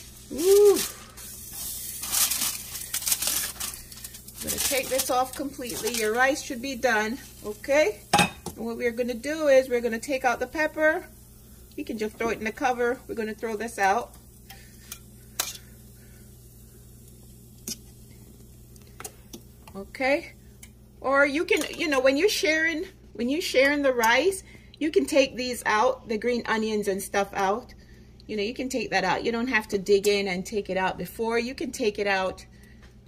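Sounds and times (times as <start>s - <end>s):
aluminium foil crinkling: 0.0s - 8.0s.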